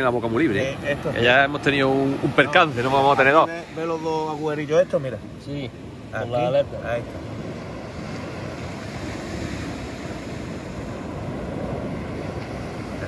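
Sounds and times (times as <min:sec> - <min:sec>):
surf on the beach: 0:00.0 - 0:13.0.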